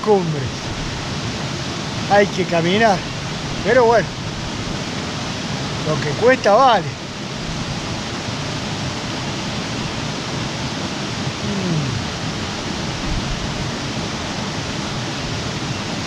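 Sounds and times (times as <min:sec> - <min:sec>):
small waterfall rushing: 0:00.0 - 0:16.0.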